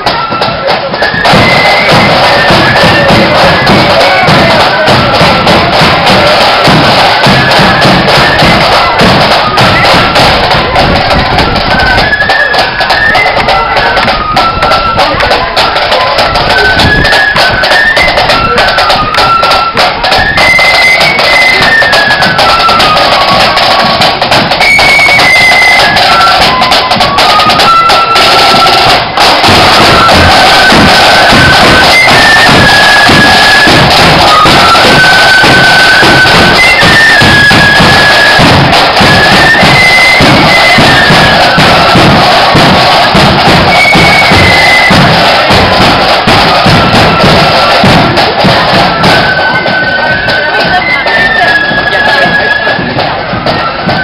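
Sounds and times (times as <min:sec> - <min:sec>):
flute melody: 0:00.0 - 0:54.0
snare drums: 0:00.0 - 0:54.0
bass drum: 0:01.3 - 0:11.9, 0:28.9 - 0:49.2.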